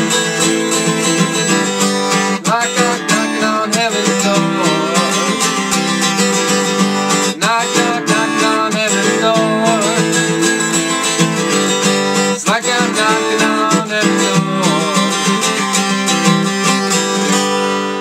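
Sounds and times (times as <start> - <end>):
man singing: 0.0 - 16.6
acoustic guitar strumming: 0.0 - 18.0.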